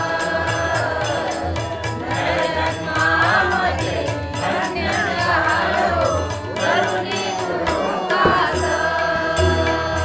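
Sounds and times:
harmonium holding notes: 0.0s - 10.0s
person singing devotional song: 0.0s - 10.0s
hand drum strokes: 7.7s - 10.0s.

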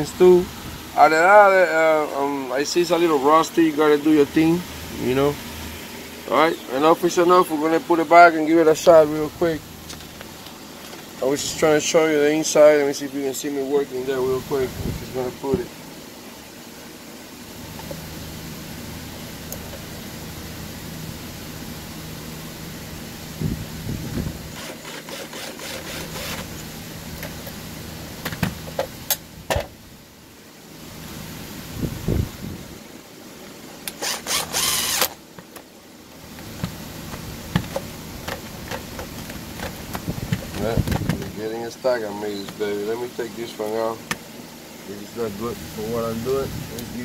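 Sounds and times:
steady low hum: 0.0s - 47.0s
cordless drill running: 24.5s - 26.6s, 33.9s - 35.2s.

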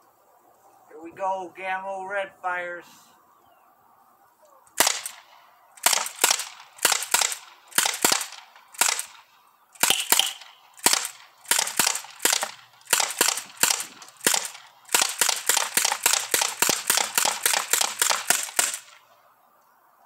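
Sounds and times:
air rifle shots: 4.8s - 19.1s.

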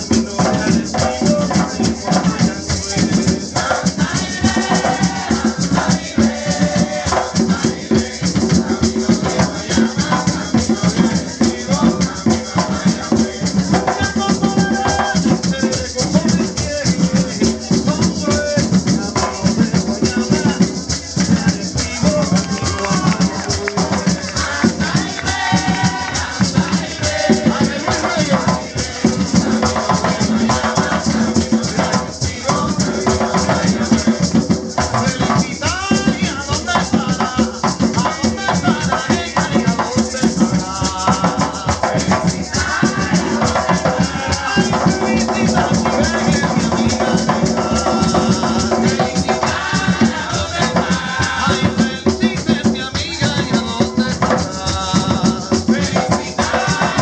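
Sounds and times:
hand drums playing fast rhythm: 0.0s - 57.0s
maraca shaking: 0.0s - 57.0s
voices singing: 0.0s - 57.0s.

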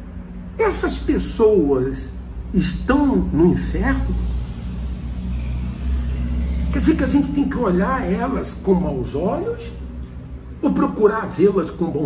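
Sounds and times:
vehicle engine rumble: 0.0s - 12.0s.

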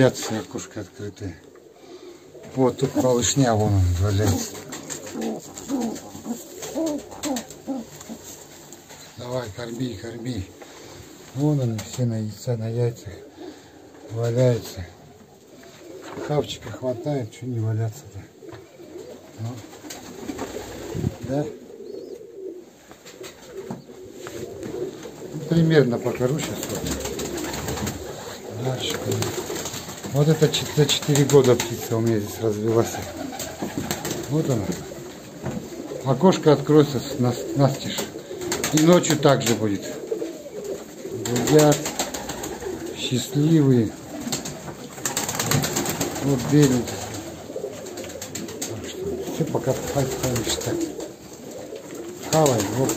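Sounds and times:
pigeons cooing: 0.0s - 52.9s
wing flutter: 2.8s - 9.2s, 44.0s - 52.9s.

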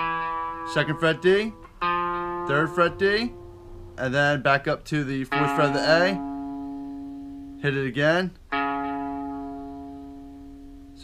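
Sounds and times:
electric guitar note ringing: 0.0s - 11.0s.

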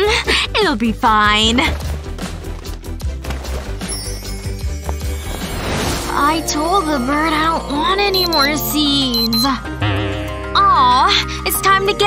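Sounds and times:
background music with light percussion: 0.0s - 12.0s.

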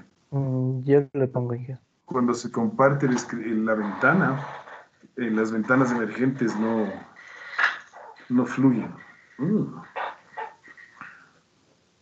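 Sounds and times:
dog barking faintly: 5.2s - 7.1s.

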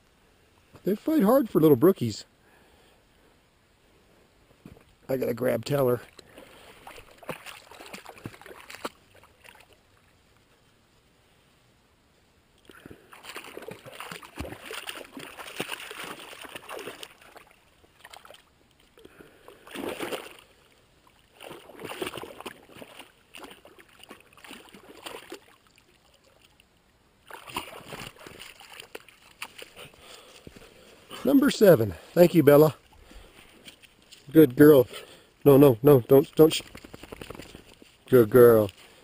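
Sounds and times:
dog splashing through water: 6.3s - 9.8s, 12.7s - 18.5s, 19.6s - 20.5s, 21.2s - 26.6s, 27.2s - 30.1s, 36.5s - 37.8s.

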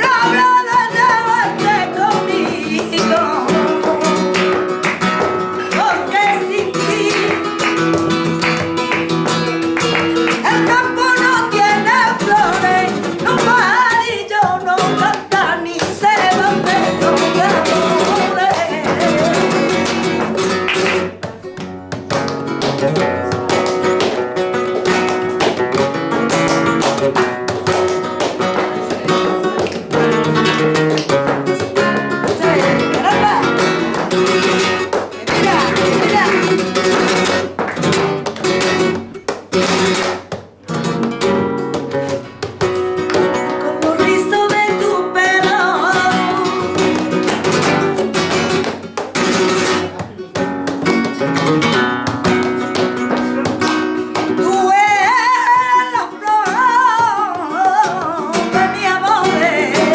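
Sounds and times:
person singing: 0.0s - 4.7s, 5.4s - 7.7s, 10.4s - 20.2s, 31.5s - 33.9s, 43.4s - 47.2s, 52.6s - 59.9s
flamenco guitar strumming: 0.0s - 59.9s
rhythmic hand-clapping: 0.0s - 59.9s.

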